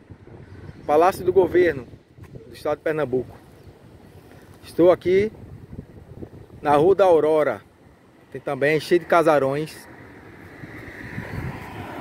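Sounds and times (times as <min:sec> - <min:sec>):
city traffic rumble: 0:00.0 - 0:12.0
vehicle approaching: 0:08.8 - 0:12.0.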